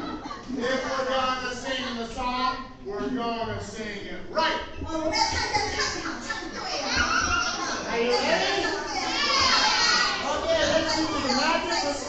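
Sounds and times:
children chattering and calling out: 0:04.9 - 0:12.0.

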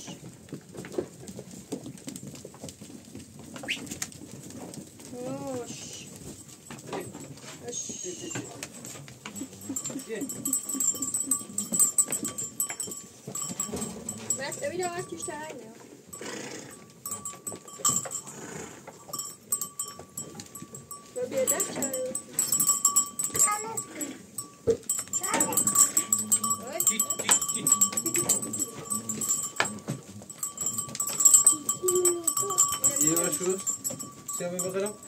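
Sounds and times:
herd clicking and rustling: 0:00.0 - 0:35.0.

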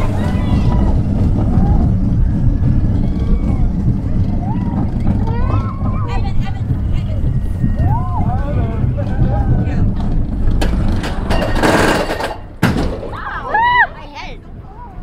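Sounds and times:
wind on microphone: 0:00.0 - 0:11.0
roller coaster rumbling on track: 0:00.0 - 0:15.0.

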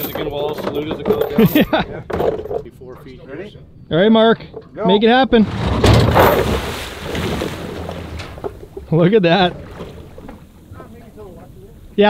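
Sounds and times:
water splashing and churning: 0:05.4 - 0:12.0.

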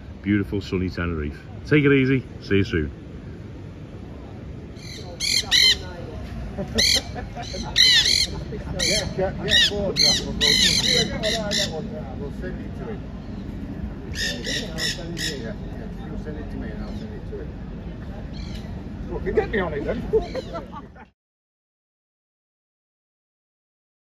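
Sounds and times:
parakeets squawking: 0:04.7 - 0:06.1, 0:06.7 - 0:12.2, 0:13.1 - 0:16.0, 0:16.7 - 0:17.2, 0:18.3 - 0:18.8, 0:20.1 - 0:20.6.

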